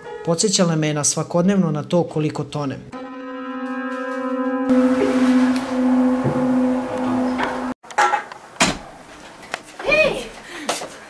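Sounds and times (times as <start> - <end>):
piano cluster chord: 3.0 - 7.8
sharp knocks: 3.9 - 8.8.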